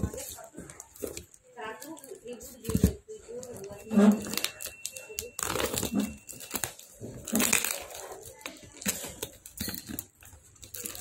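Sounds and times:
plastic wrapping crinkling: 0:00.0 - 0:11.0.

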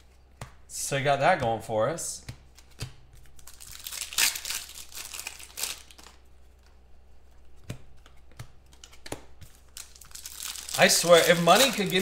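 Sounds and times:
plastic wrapper crinkling and tearing: 0:03.3 - 0:06.2, 0:08.8 - 0:12.0.

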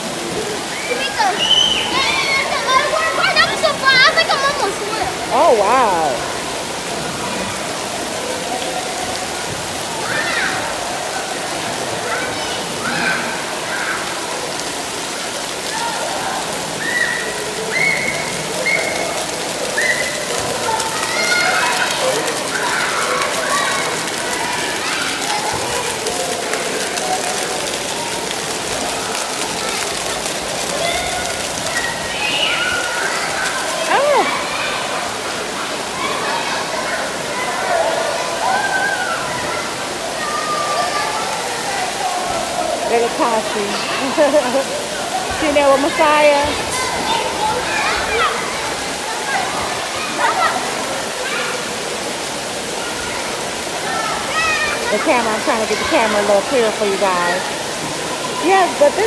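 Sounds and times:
water jets spraying: 0:00.0 - 0:59.0
children calling out: 0:00.6 - 0:59.0.

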